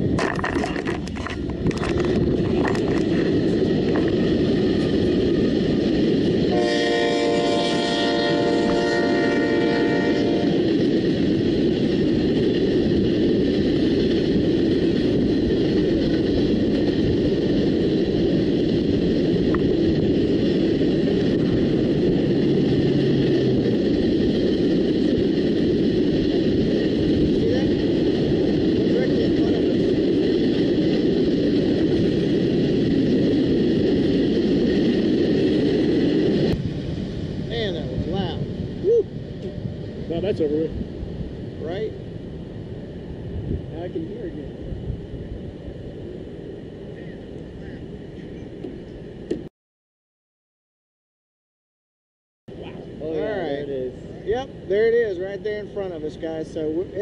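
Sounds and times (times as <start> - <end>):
train passing rumble: 0.0 - 49.5, 52.5 - 57.0
train horn: 6.5 - 10.6.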